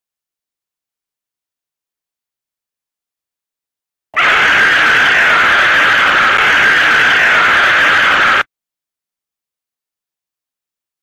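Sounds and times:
harsh cartoon scream: 0:04.2 - 0:08.5.

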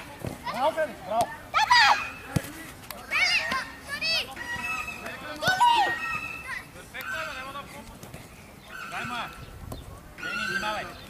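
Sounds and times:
children shouting: 0:01.5 - 0:02.2, 0:03.1 - 0:07.4.

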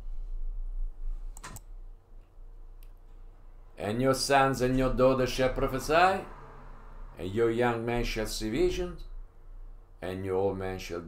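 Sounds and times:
steady low hum: 0:00.0 - 0:11.0
computer mouse clicking: 0:01.4 - 0:01.7.

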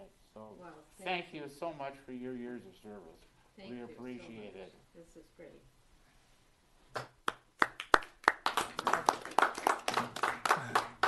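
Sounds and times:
small group clapping: 0:06.9 - 0:11.0.

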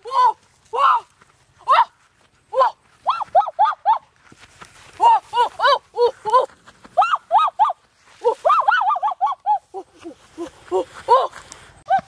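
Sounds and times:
woman's frightened cries: 0:00.0 - 0:04.1, 0:05.0 - 0:12.0.

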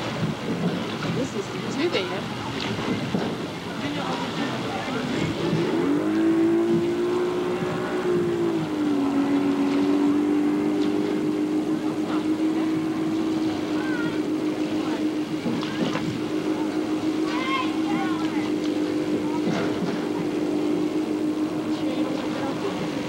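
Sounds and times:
motorboat engine running: 0:00.0 - 0:23.0.

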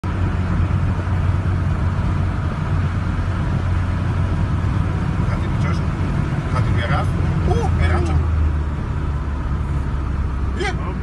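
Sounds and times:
car interior road rumble: 0:00.0 - 0:11.0.

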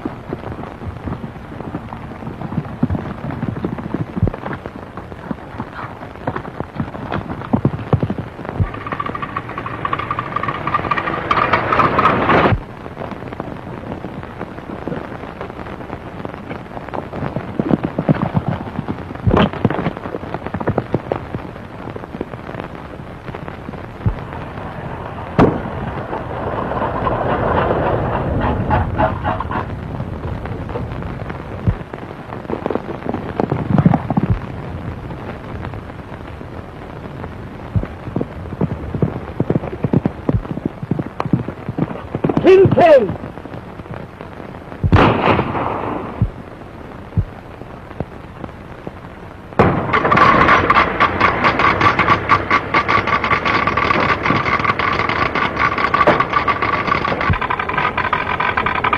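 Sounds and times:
film soundtrack crackle: 0:00.0 - 0:58.9
old car running fast: 0:07.1 - 0:12.7, 0:24.3 - 0:29.8, 0:49.6 - 0:58.9
sharp gunshot-like cracks: 0:44.9 - 0:46.2.

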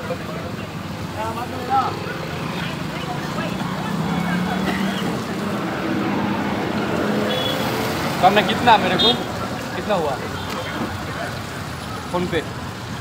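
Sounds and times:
people talking indistinctly: 0:00.0 - 0:13.0
vehicle engines humming: 0:00.0 - 0:13.0.

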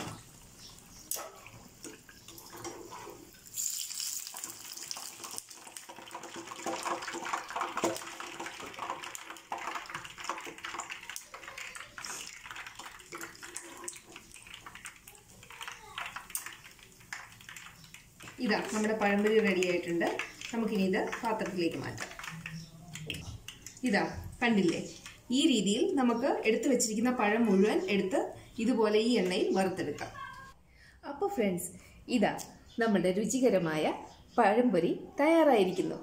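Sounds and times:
oil sizzling in a frying pan: 0:00.0 - 0:22.6.

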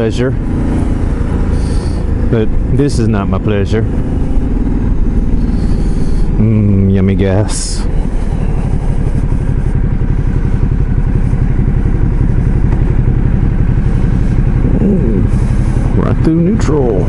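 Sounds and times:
motorcycle engine idling: 0:00.0 - 0:17.0.

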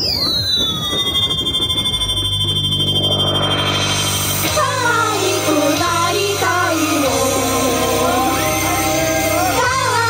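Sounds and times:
electronic pop track over speakers: 0:00.0 - 0:10.0
siren-like synth sweep: 0:00.0 - 0:10.0
crowd murmur: 0:06.5 - 0:10.0.

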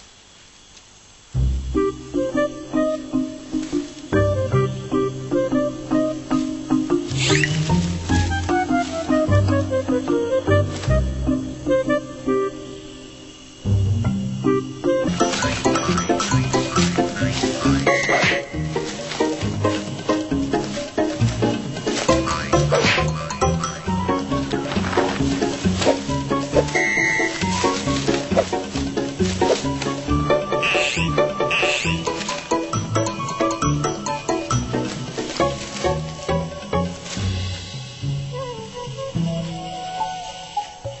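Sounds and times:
background music with steady beat: 0:01.4 - 0:39.8.

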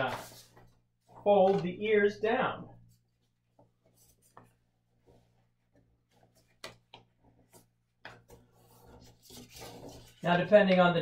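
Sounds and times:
paper rustling and creasing: 0:00.0 - 0:01.9, 0:02.9 - 0:10.8.

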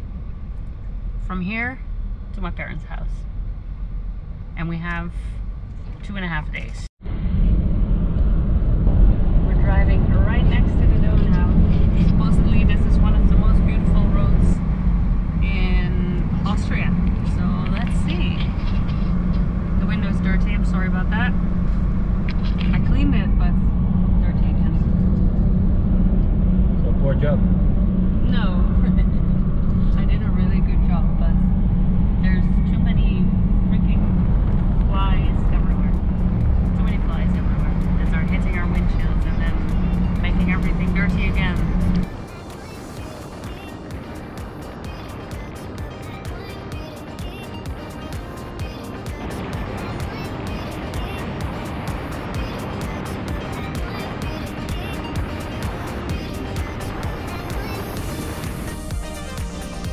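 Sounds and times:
engine and tyre drone: 0:00.0 - 0:06.4, 0:07.0 - 0:59.9
music with voices: 0:33.9 - 0:59.9.

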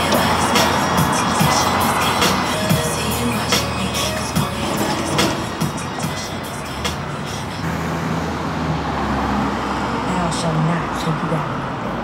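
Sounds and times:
background music: 0:00.0 - 0:07.7
vehicle passing with low rumble: 0:00.0 - 0:12.0.

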